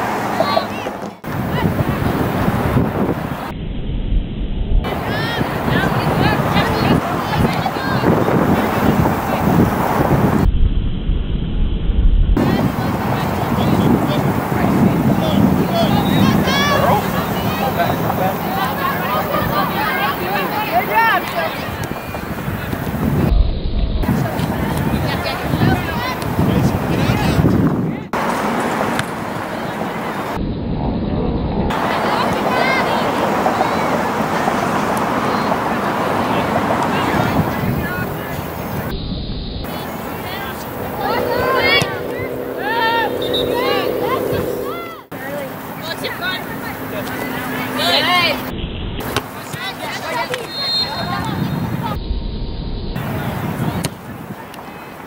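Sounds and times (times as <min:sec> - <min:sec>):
steady outdoor noise: 0:00.0 - 0:55.0
wind rumbling on microphone: 0:00.9 - 0:45.2, 0:50.9 - 0:55.0
distant shouts: 0:12.4 - 0:22.9, 0:39.6 - 0:52.0.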